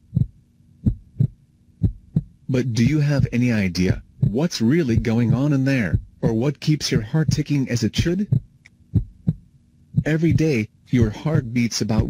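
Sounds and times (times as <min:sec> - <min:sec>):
faint steady hum: 0:00.0 - 0:12.0
heartbeat thuds: 0:00.0 - 0:12.0.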